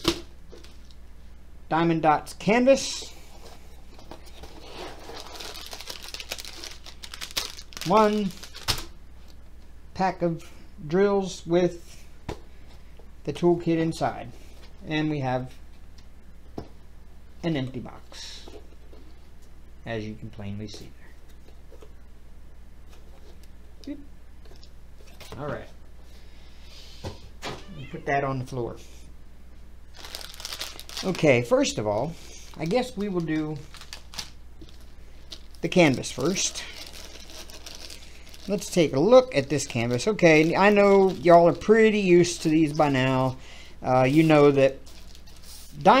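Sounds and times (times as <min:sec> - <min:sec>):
plastic packaging crinkling: 0:04.2 - 0:09.4, 0:29.9 - 0:43.3, 0:44.0 - 0:46.0
cat meowing: 0:27.6 - 0:28.2.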